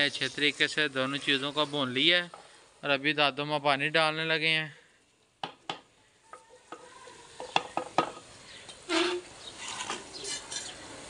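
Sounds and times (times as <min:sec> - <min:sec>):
faint frying sizzle: 0:00.0 - 0:11.0
metal ladle scraping clay pot: 0:08.8 - 0:11.0.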